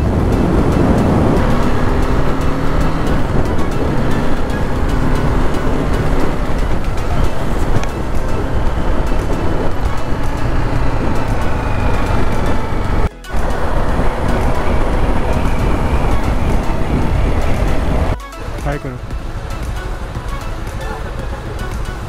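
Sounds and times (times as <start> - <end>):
motorcycle engine: 0.0 - 22.0
music: 0.0 - 22.0
wind and road rush: 0.0 - 22.0.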